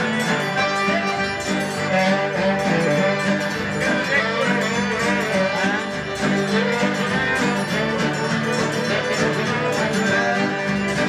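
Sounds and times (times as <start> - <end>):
accordion: 0.0 - 11.0
fiddles: 0.0 - 11.0
strummed guitars: 0.0 - 11.0.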